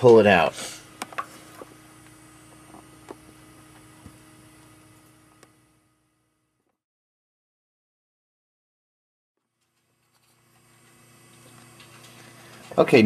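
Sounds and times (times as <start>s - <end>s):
faint steady hum: 0.0s - 6.8s, 9.4s - 13.0s.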